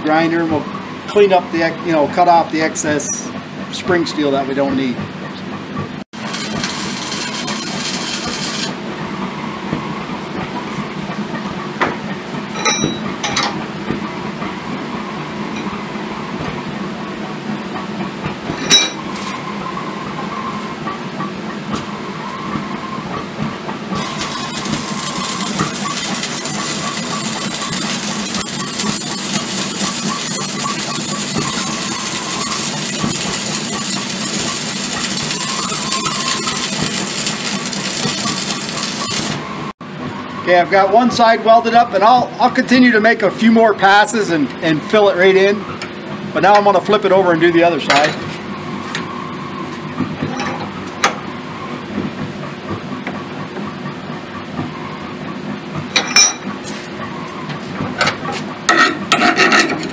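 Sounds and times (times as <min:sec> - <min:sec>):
arc welder crackling: 0:06.1 - 0:08.8, 0:23.9 - 0:39.4.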